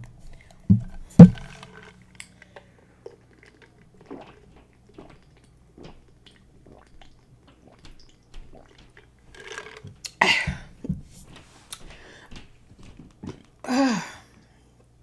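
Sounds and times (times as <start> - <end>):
person sipping and swallowing: 0.3 - 10.2.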